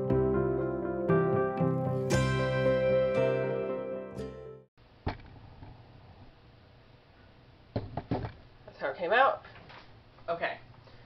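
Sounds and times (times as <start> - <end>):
faint room hiss: 4.8 - 11.0.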